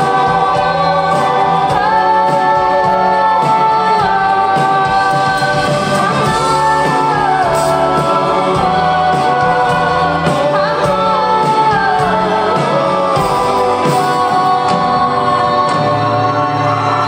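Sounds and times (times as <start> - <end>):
live band playing slow song: 0.0 - 17.0
person singing: 0.0 - 17.0.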